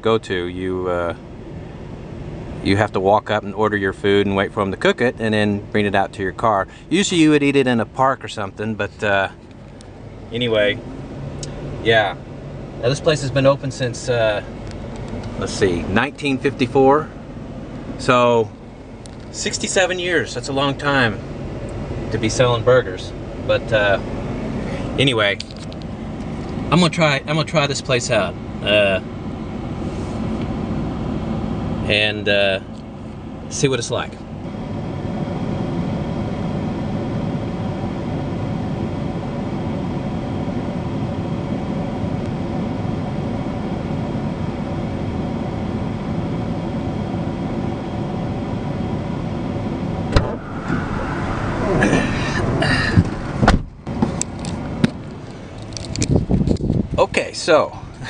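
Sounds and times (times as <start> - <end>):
air conditioning blower: 0.0 - 58.0
vehicle engine idling: 0.0 - 58.0
low rumble: 49.4 - 57.0
knocks and clicks in vehicle cab: 52.9 - 54.2.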